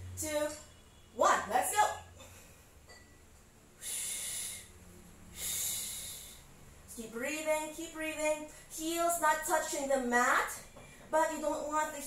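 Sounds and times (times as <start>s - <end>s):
woman breathing hard: 3.8s - 6.6s.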